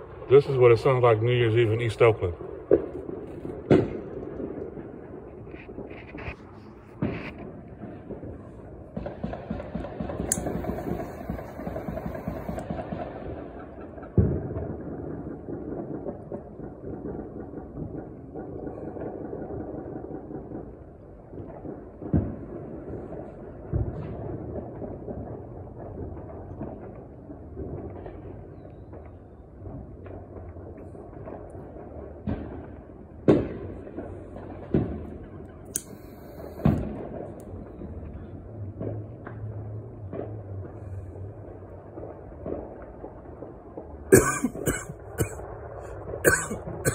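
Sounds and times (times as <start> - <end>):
firecrackers crackling: 0.0 - 46.9
loud fireworks bangs: 0.0 - 46.9.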